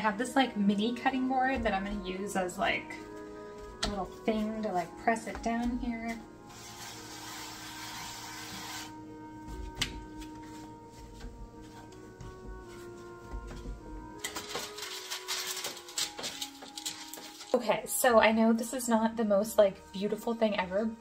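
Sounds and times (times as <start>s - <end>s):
soft background music: 0.0s - 21.0s
parchment paper crinkling: 14.2s - 17.7s.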